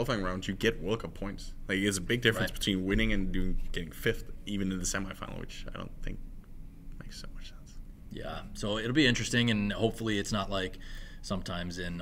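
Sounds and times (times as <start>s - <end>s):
man speaking: 0.0s - 6.3s.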